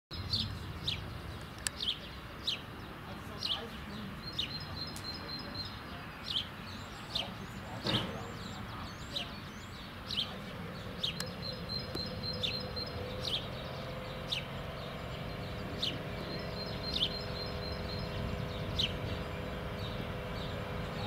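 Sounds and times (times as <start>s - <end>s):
songbird chirping: 0.1s - 21.0s
electric locomotive humming: 0.2s - 21.0s.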